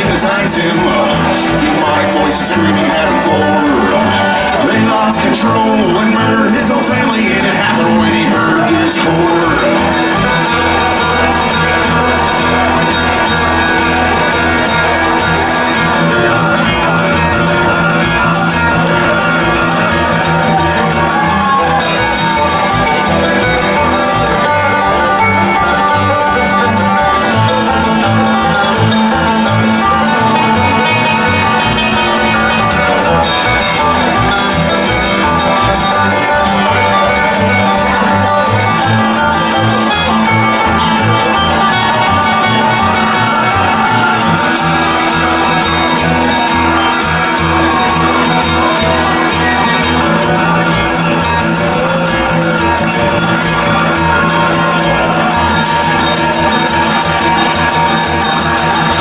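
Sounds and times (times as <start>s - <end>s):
acoustic guitar: 0.0s - 59.0s
banjo: 0.0s - 59.0s
upright bass pulse: 0.0s - 59.0s.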